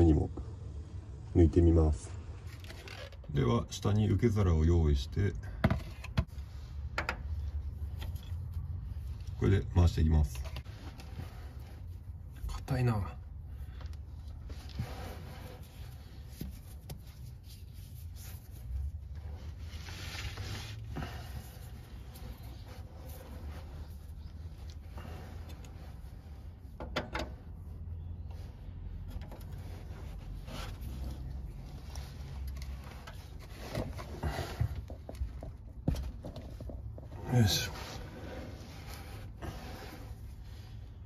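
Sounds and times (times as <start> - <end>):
low steady rumble: 6.3 - 41.0.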